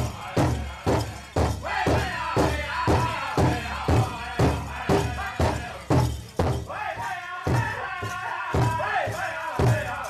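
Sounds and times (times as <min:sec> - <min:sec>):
drum struck in steady beat: 0:00.0 - 0:10.0
group singing: 0:00.0 - 0:10.0.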